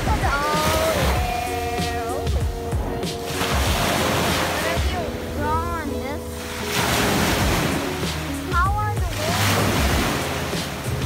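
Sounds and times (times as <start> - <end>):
background music: 0.0 - 11.0
small waves breaking on beach: 0.0 - 11.0.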